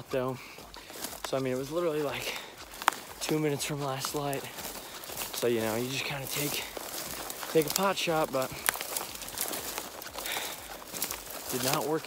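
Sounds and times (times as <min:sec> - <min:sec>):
dry grass stalks rustling: 0:00.0 - 0:12.0
footsteps in dry grass: 0:00.0 - 0:12.0.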